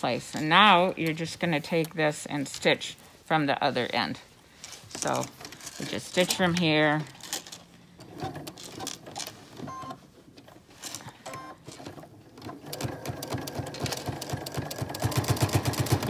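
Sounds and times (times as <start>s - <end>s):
sewing machine stitching: 11.3s - 16.0s.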